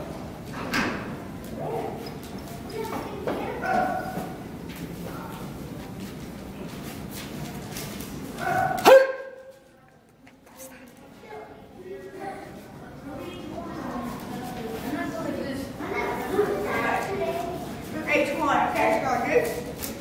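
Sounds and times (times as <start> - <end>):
indistinct voices in a hall: 0.0 - 20.0.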